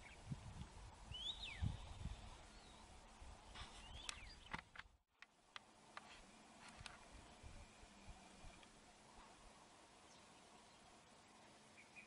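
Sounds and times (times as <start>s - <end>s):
bird calling: 10.0s - 12.0s.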